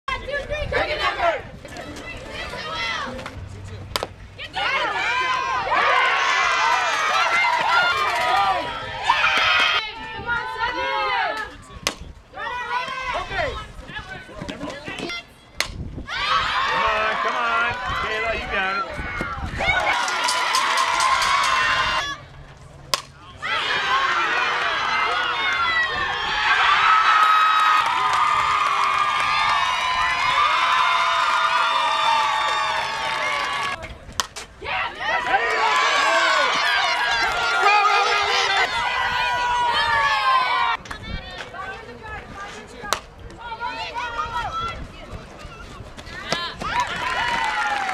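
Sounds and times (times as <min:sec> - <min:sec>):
bat striking ball: 0:03.1 - 0:04.1, 0:22.9 - 0:23.2, 0:34.1 - 0:34.5, 0:42.9 - 0:43.1
bat cracking against ball: 0:03.9 - 0:04.2, 0:22.9 - 0:23.2, 0:34.1 - 0:34.5
crowd cheering and screaming: 0:04.6 - 0:09.8, 0:23.4 - 0:33.8, 0:34.7 - 0:40.8.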